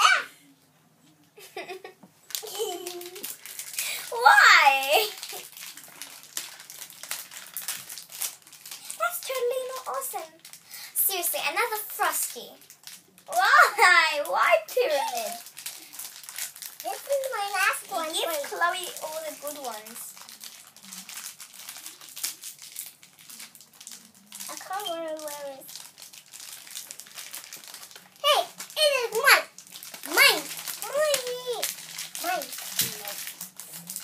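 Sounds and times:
plastic packet crinkling: 2.2 - 34.0.

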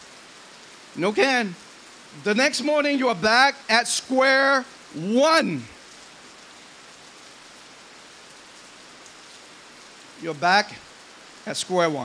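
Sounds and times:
low steady hiss: 0.0 - 12.0.

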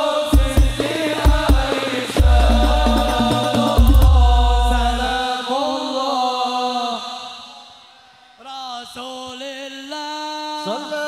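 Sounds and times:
voices singing: 0.0 - 10.0
deep bass note: 2.2 - 5.2.

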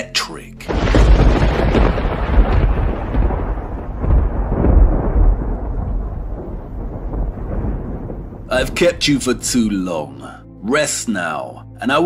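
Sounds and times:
thunderclap rumbling: 0.7 - 10.1.

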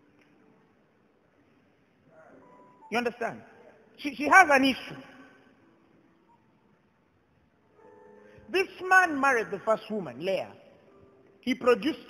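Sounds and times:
faint sustained musical tones: 0.0 - 11.5
man preaching: 2.9 - 5.4, 8.5 - 10.6, 11.4 - 12.0.

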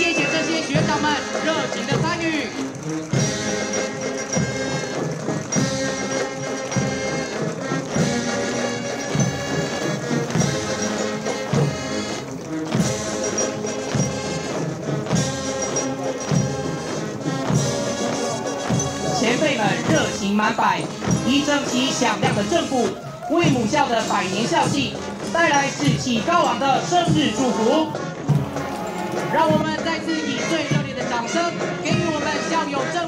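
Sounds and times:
steady drum beat: 0.0 - 31.1
brass playing a march: 0.0 - 33.0.

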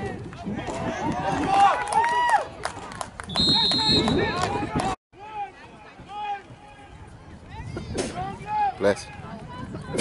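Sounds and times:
spectators shouting and cheering: 0.0 - 7.1.

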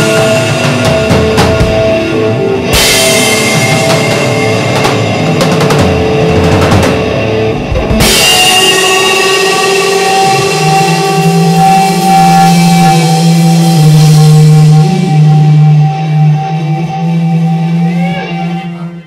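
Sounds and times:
live rock band playing: 0.0 - 19.0
ringing electric guitar notes: 0.0 - 19.0.

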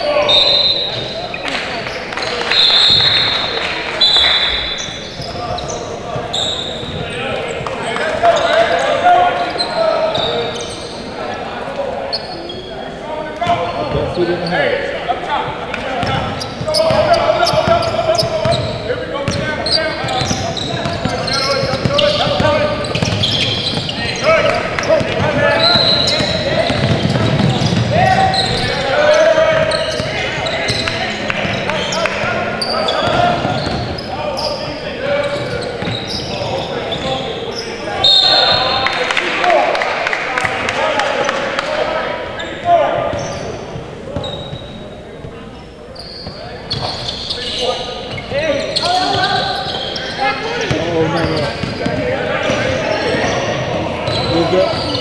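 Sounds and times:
shoe squeaks: 0.0 - 11.2, 12.0 - 14.9, 16.0 - 38.8, 42.3 - 55.0
voices calling out: 0.0 - 55.0
basketball bouncing on hardwood: 26.2 - 27.9.

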